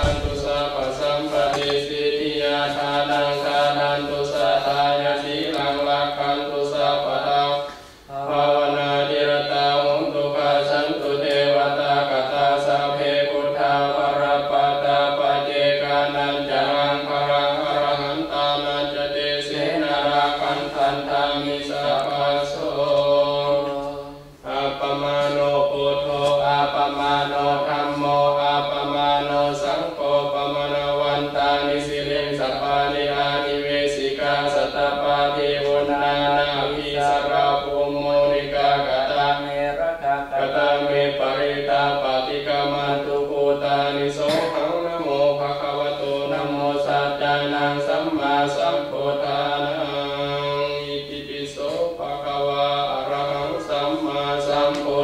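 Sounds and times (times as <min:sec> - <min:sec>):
monks chanting: 0:00.0 - 0:55.0.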